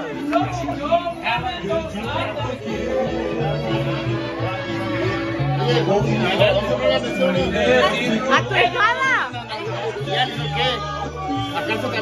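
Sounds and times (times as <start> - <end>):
background music with bass line: 0.0 - 12.0
people talking over one another: 0.0 - 12.0.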